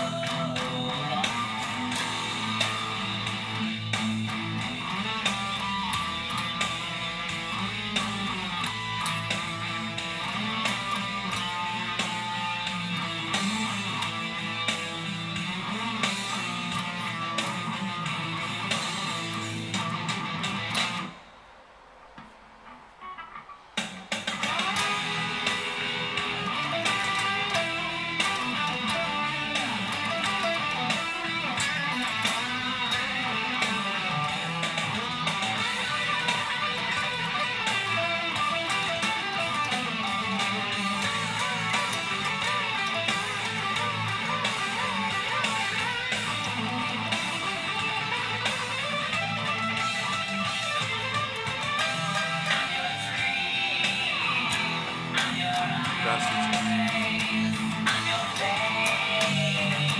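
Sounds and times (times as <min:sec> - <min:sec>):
distorted electric guitar solo: 0:00.0 - 0:21.2, 0:22.6 - 0:59.9.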